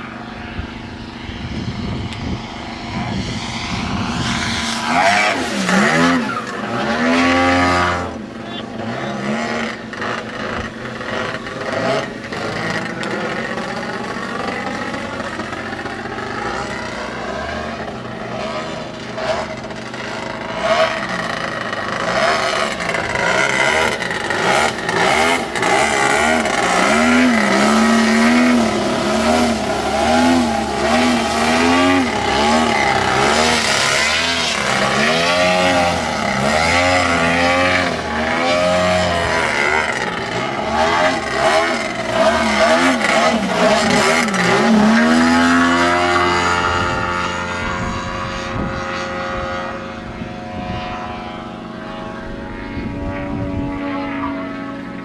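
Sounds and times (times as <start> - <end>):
model plane engine: 0.0 - 55.0.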